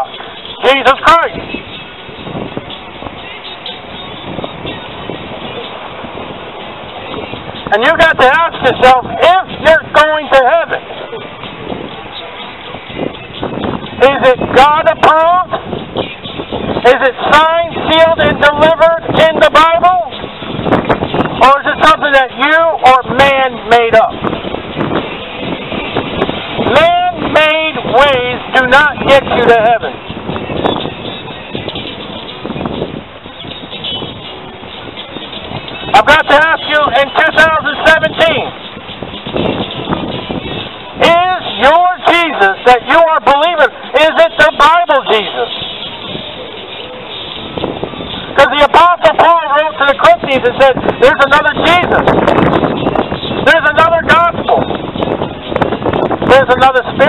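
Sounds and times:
outdoor hubbub: 0.0 - 57.0
wind on microphone: 0.0 - 57.0.

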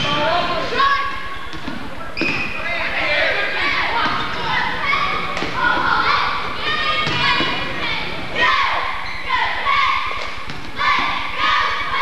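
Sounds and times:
voices in gym: 0.0 - 12.0.

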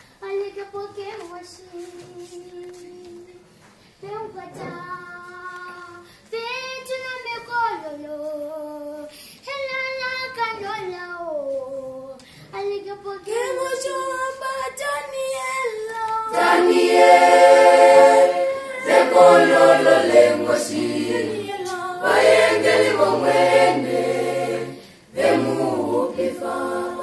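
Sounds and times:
choir singing: 16.3 - 27.0.

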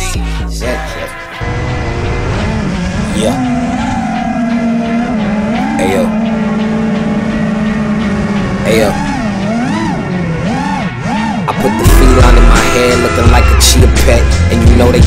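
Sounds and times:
drone motors and propellers whining: 1.1 - 15.0.

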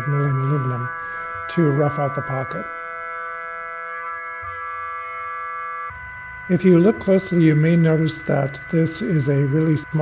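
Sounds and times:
held chord of steady tones: 0.0 - 10.0.

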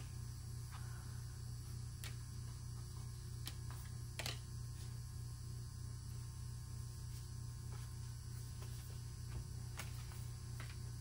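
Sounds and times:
low electrical hum: 0.0 - 11.0.

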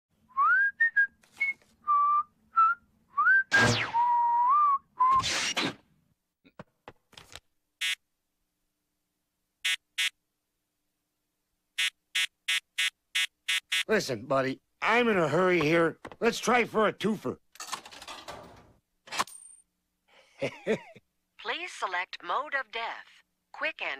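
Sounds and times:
man whistling a jaunty tune: 0.3 - 5.2
quick falling swish: 3.5 - 4.1, 5.1 - 5.8.

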